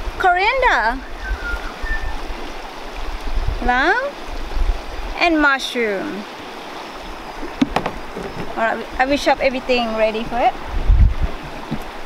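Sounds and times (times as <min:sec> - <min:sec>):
river water over rocks: 0:00.0 - 0:12.0
faint high whistles: 0:01.0 - 0:02.2.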